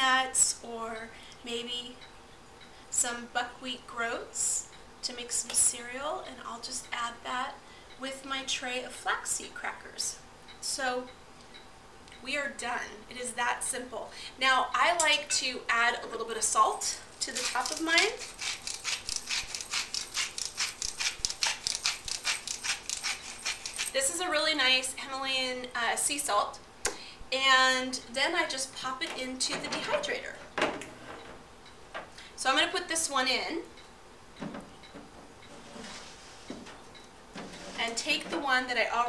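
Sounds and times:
salt grinder crunching: 17.1s - 24.0s.

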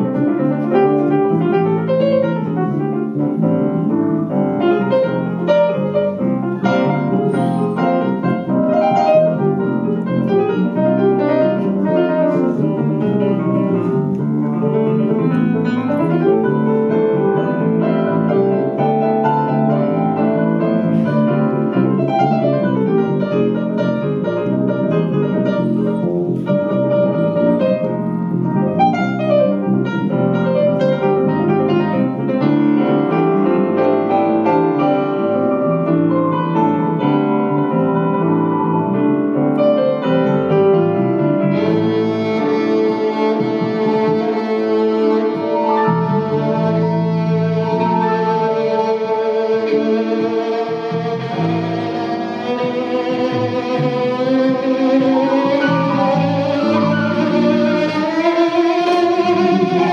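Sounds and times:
bowed violin melody: 0.0s - 59.9s
digital piano chords: 0.0s - 59.9s.

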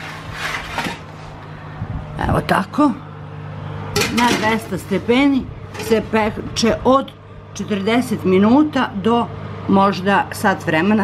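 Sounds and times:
metal baking tray scraping: 0.0s - 1.4s, 4.0s - 6.7s
low steady hum: 0.0s - 11.0s.

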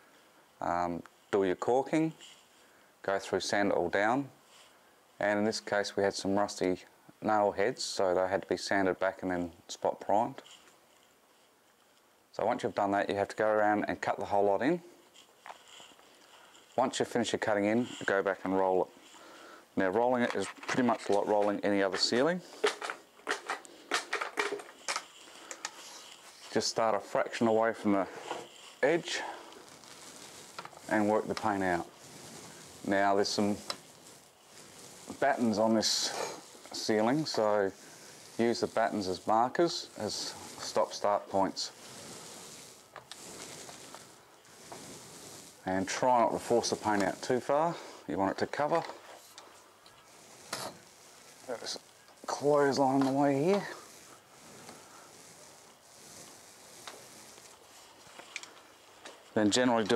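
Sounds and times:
paint roller pole clicking: 19.9s - 59.9s.

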